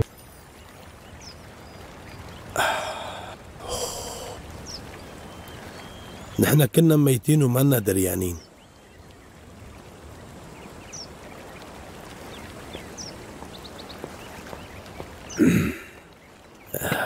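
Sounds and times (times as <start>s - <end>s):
faint high bird chirps: 4.6s - 6.6s.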